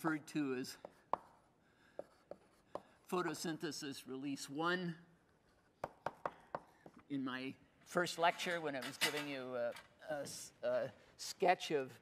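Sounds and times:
chalk tapping on board: 0:00.7 - 0:03.0, 0:05.8 - 0:07.0.

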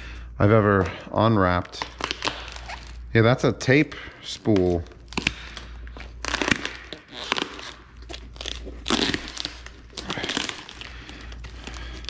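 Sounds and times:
plastic wrapping crinkling and tearing: 0:01.4 - 0:03.1, 0:03.8 - 0:12.0.

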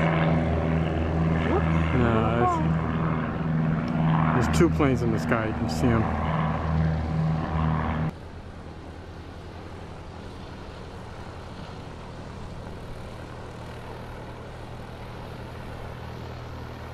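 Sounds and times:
low engine drone: 0:00.0 - 0:16.9.

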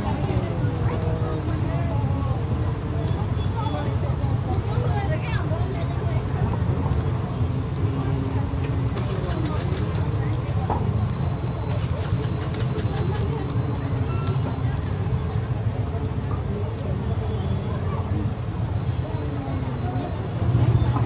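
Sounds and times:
low rumble of traffic: 0:00.0 - 0:21.0
voices of passers-by: 0:00.0 - 0:21.0
high-pitched electronic beep: 0:14.0 - 0:14.5.

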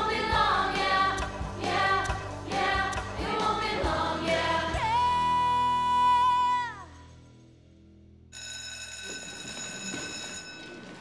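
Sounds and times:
electric school bell ringing: 0:08.3 - 0:11.0.

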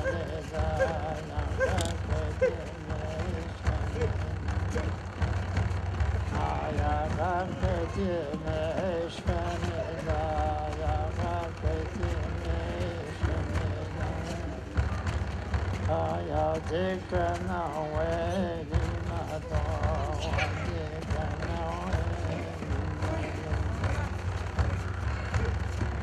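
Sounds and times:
person chanting: 0:00.0 - 0:26.0
steady low hand drumbeat: 0:00.0 - 0:26.0.

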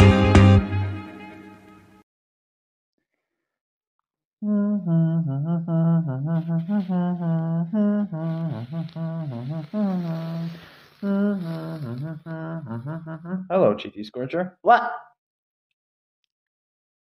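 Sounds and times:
person humming: 0:04.4 - 0:13.6.

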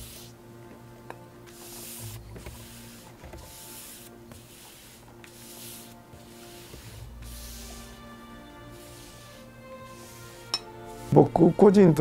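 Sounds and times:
brush swishing across panel: 0:00.0 - 0:00.4, 0:01.5 - 0:11.4
quiet background music: 0:00.0 - 0:12.0.

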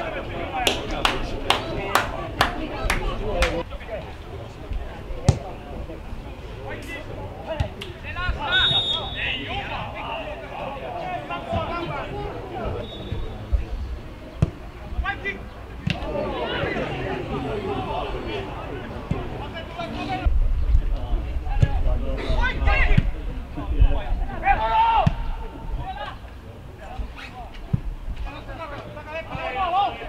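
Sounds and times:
players calling out: 0:00.0 - 0:20.3.

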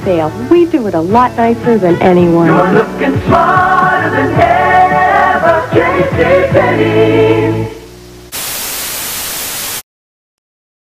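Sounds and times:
television static hiss: 0:00.0 - 0:09.8.

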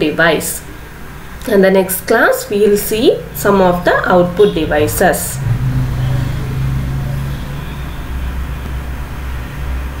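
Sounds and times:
low background rumble: 0:01.6 - 0:09.2.

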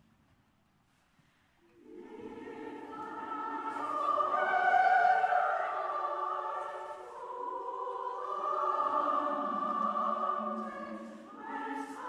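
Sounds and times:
slow church music chords: 0:01.8 - 0:12.0.

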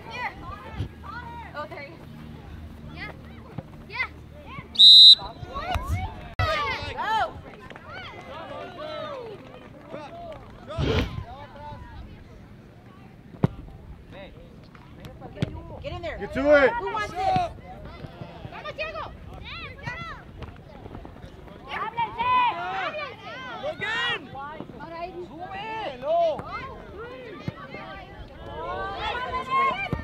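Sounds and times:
referee's whistle blast: 0:04.8 - 0:05.3.

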